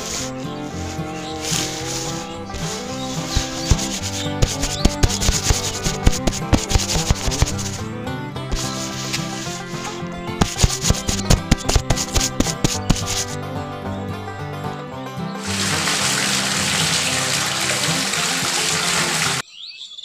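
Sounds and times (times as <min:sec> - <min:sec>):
background music: 0:00.0 - 0:19.4.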